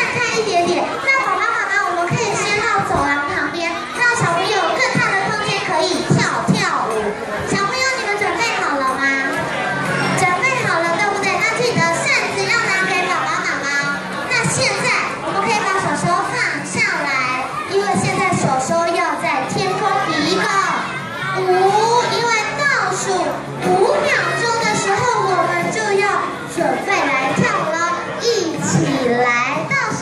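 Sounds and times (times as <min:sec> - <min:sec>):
children shouting and chattering: 0:00.0 - 0:30.0
music: 0:00.0 - 0:30.0.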